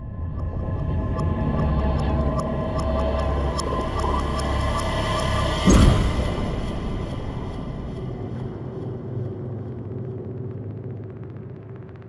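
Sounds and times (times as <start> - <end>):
low cinematic drone: 0.0 - 12.0.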